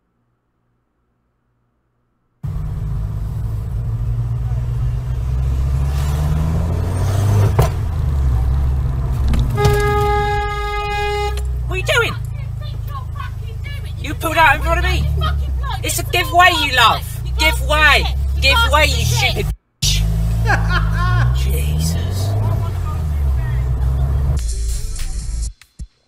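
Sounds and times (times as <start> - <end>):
road and engine rumble: 2.4 - 25.5
car horn: 6.7 - 24.4.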